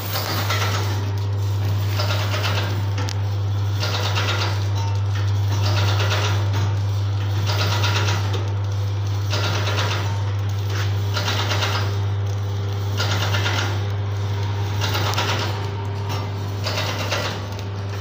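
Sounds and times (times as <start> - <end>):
packing machine low hum: 0.0 - 18.0
rattling mechanical cycle: 0.0 - 18.0.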